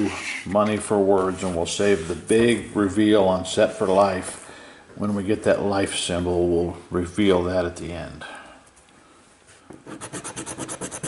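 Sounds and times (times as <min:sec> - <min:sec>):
coin scratching a ticket: 0:09.9 - 0:11.0.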